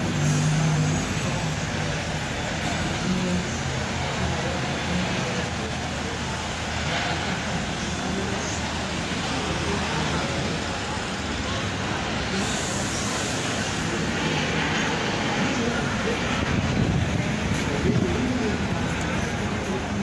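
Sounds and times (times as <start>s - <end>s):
road traffic: 0.0s - 20.0s.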